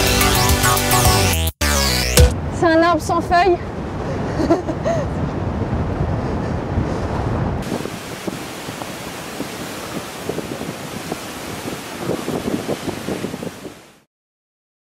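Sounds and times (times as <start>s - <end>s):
wind noise on microphone: 2.3s - 14.1s
hiss of wind and sea: 3.4s - 14.1s.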